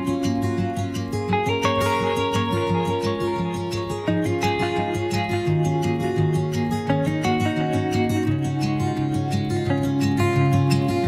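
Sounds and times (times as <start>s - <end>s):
plucked acoustic guitar music: 0.0s - 11.0s.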